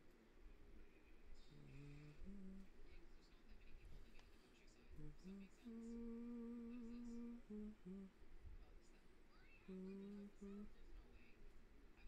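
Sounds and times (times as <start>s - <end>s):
man humming: 1.5s - 2.7s, 5.0s - 8.1s, 9.7s - 10.7s.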